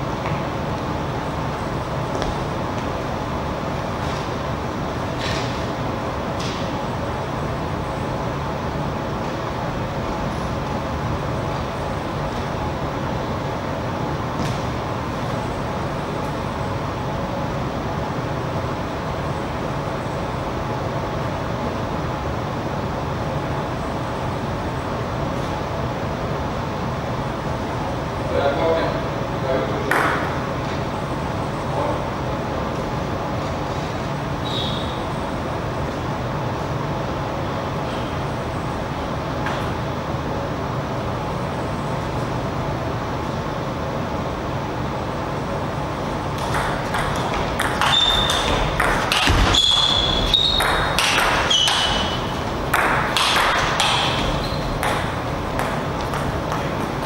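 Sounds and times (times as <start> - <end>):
steady background hum: 0.0 - 57.0
short high squeaks: 34.4 - 35.0, 47.8 - 52.4, 54.3 - 54.8.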